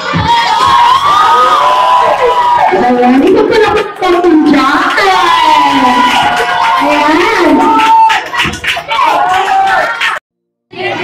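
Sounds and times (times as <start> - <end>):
children shouting and cheering: 0.0 - 11.0.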